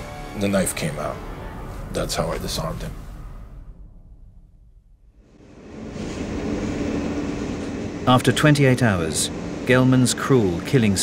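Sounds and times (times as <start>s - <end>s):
subway train rumbling: 5.2s - 11.0s.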